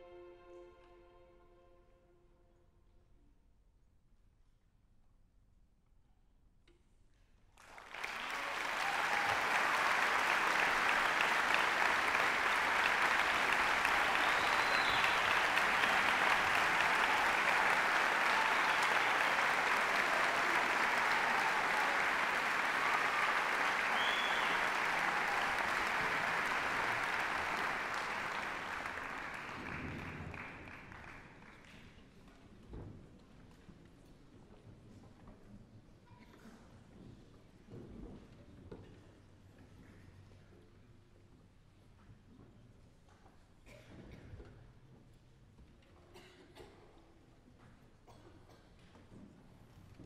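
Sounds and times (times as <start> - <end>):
audience applauding: 7.6 - 31.8.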